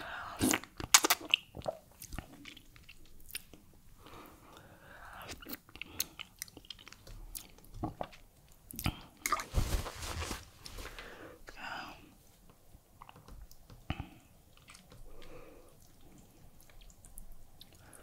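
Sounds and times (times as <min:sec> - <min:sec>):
chewing and wet mouth smacks: 0:00.4 - 0:03.8, 0:05.2 - 0:09.4, 0:13.0 - 0:18.0.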